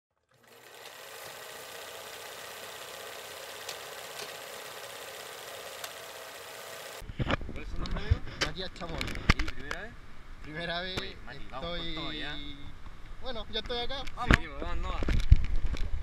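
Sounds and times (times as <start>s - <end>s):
whirring hiss: 0.5s - 7.0s.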